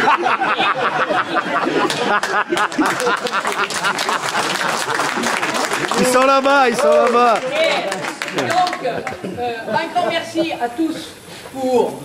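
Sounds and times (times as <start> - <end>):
crowd applauding: 1.0 - 9.4.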